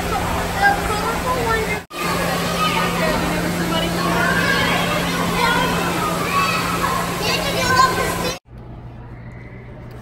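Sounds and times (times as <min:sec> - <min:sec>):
chatter of many voices: 0:00.0 - 0:08.4.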